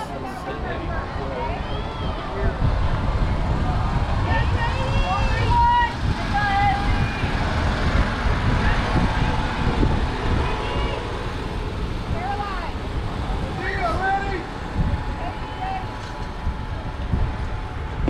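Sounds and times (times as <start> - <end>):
distant calls and shouts: 0.0 - 2.7
wind rumbling on microphone: 0.0 - 18.0.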